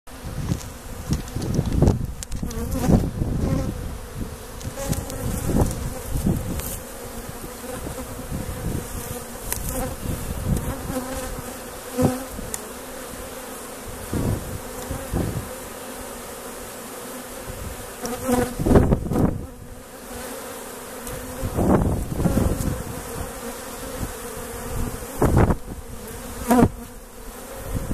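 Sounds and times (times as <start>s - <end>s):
honeybees buzzing: 0.1s - 27.9s.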